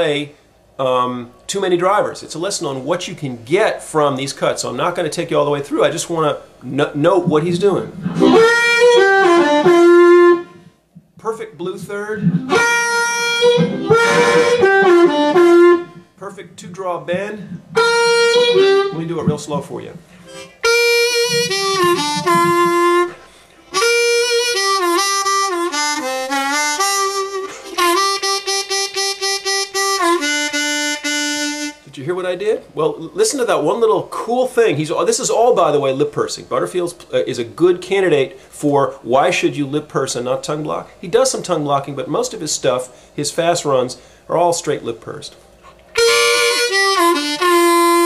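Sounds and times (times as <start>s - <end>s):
blues harmonica playing: 7.2s - 10.9s, 11.6s - 31.9s, 45.9s - 48.0s.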